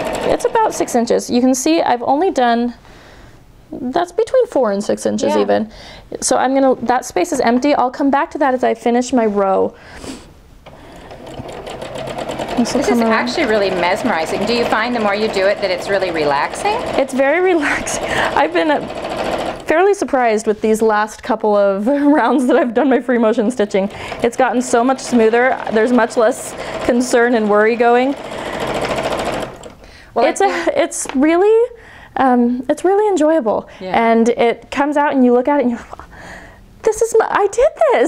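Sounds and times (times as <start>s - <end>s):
sewing machine motor hum: 0.0s - 1.0s, 10.6s - 19.7s, 23.6s - 30.3s
sewing machine stitching: 0.0s - 1.0s, 10.6s - 19.8s, 23.6s - 29.8s.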